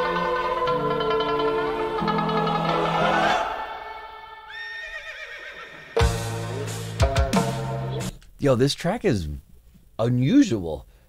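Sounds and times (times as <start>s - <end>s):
horse whinnying: 4.5s - 6.1s
metal song: 6.0s - 8.2s.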